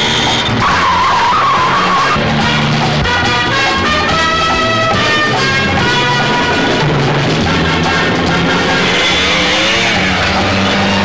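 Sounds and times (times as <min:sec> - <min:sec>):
car tyres squealing: 0:00.0 - 0:11.0.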